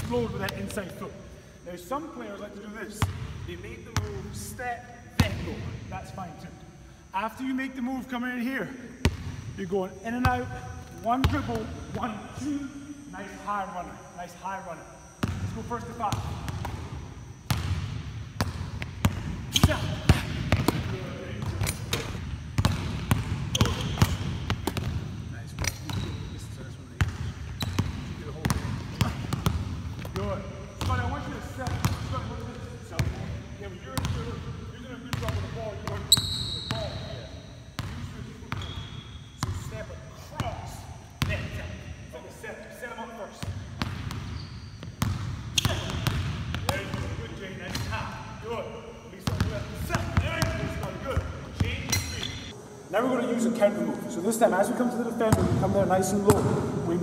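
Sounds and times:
sneaker squeak: 18.4 - 42.0, 43.3 - 48.4, 49.3 - 52.6.

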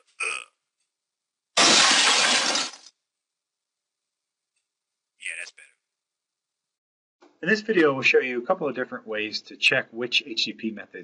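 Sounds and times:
glass shattering crash: 1.6 - 2.9.

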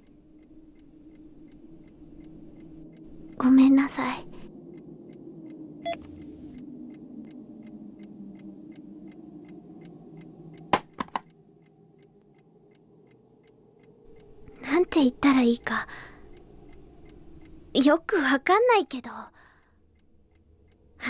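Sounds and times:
clock ticking: 0.0 - 19.1
low hum: 0.0 - 21.0.

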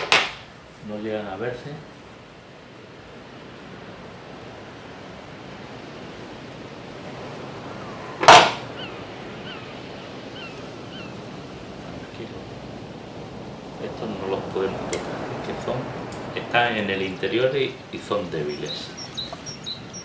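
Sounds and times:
steady background hiss: 0.0 - 20.0
faint high chirps: 18.3 - 20.0.

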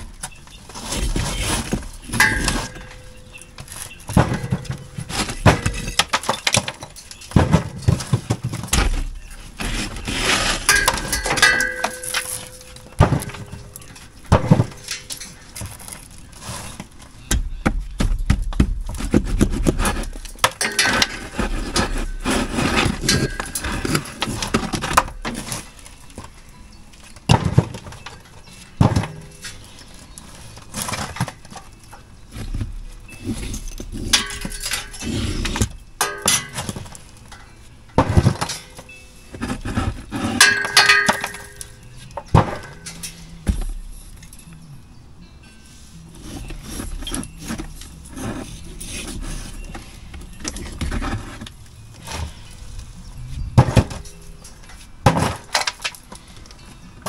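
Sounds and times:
bricks clinking and knocking: 0.0 - 26.4, 27.0 - 44.4, 46.2 - 57.0
scraping and crumbling rubble: 0.0 - 44.5, 46.1 - 57.0.

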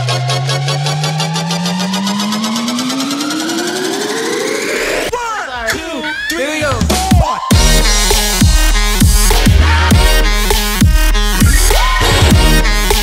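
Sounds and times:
rapid repeated pulses: 0.0 - 5.1
rising synth sweep: 0.0 - 5.1
wobbling synth lines: 0.0 - 5.1.

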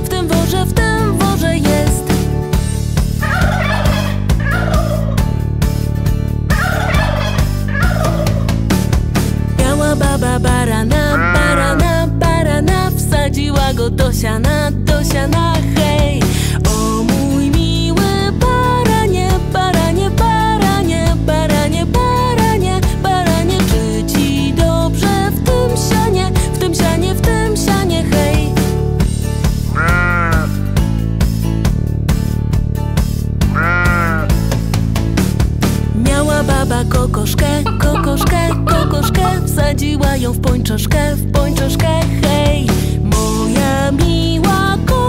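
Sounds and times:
children's song with steady beat: 0.0 - 2.1, 9.6 - 28.6, 35.9 - 45.0
turkey gobbling: 3.2 - 5.2, 6.5 - 8.5, 37.6 - 39.6
bleat sound effect: 11.1 - 12.0, 29.7 - 30.7, 33.4 - 34.4.

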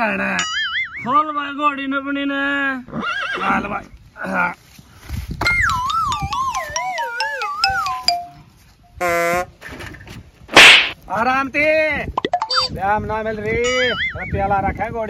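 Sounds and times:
horse whinny: 2.9 - 3.7.

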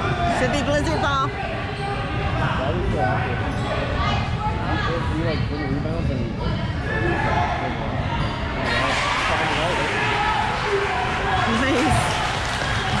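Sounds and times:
people shouting and chattering: 0.0 - 13.0.

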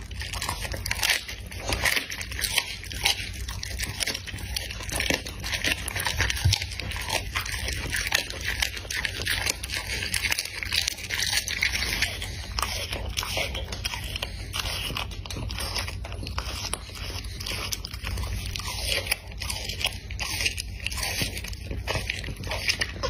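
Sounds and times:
dog chewing raw meat: 0.0 - 23.0.

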